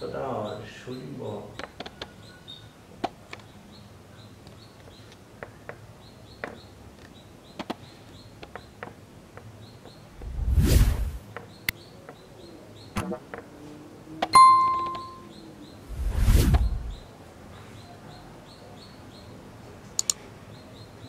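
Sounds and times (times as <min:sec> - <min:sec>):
loud whoosh: 0:10.2 - 0:11.2, 0:15.9 - 0:17.0
bell-like ding: 0:14.4 - 0:15.3.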